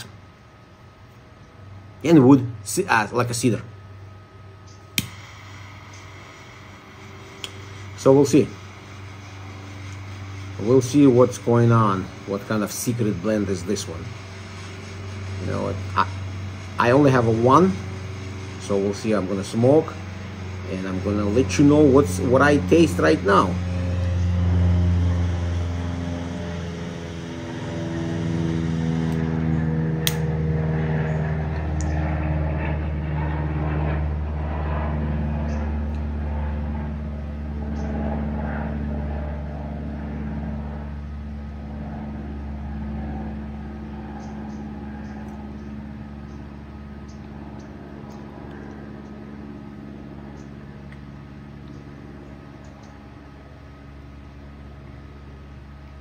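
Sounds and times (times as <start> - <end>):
low mechanical drone: 0.0 - 56.0.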